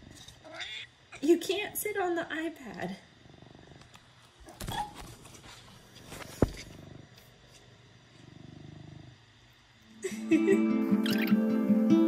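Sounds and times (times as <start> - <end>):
cat purring: 2.8 - 4.1, 6.2 - 9.6.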